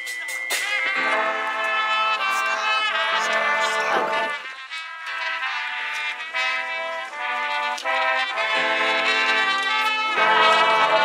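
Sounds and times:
brass band holding chords: 0:00.0 - 0:11.0.

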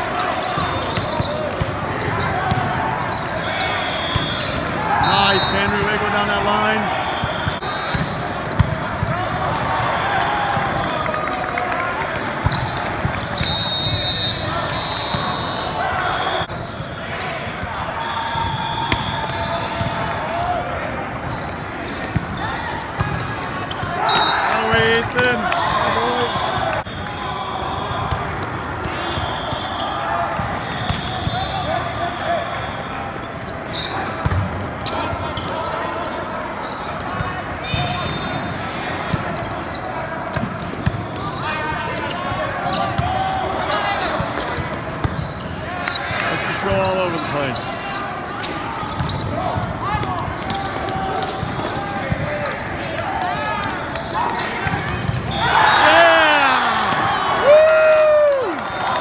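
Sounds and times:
voices and shouts: 0:00.0 - 0:07.9, 0:22.4 - 0:28.0, 0:45.7 - 0:59.0
volleyballs being hit and bouncing: 0:00.4 - 0:03.0, 0:04.0 - 0:13.5.

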